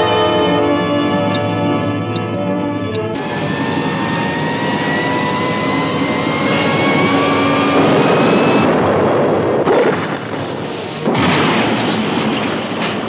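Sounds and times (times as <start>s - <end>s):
machinery rushing noise with whine: 0.0s - 13.0s.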